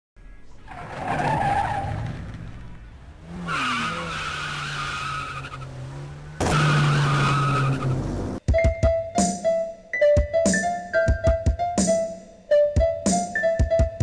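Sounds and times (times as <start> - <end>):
car tyres squealing: 0.4 - 8.4
car engine running: 2.0 - 8.4.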